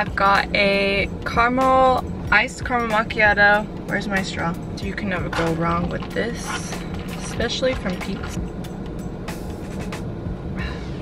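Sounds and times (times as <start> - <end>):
car cabin hum: 0.0 - 11.0.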